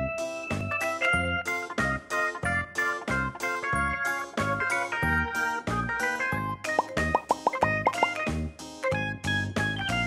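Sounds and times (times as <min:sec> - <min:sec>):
cheerful keyboard music with beat: 0:01.4 - 0:08.8
short rising bloops: 0:06.8 - 0:08.2.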